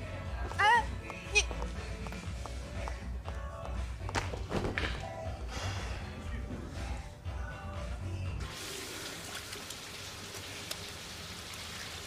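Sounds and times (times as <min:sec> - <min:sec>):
background music: 0:00.0 - 0:11.1
water running from sink tap: 0:08.4 - 0:12.0.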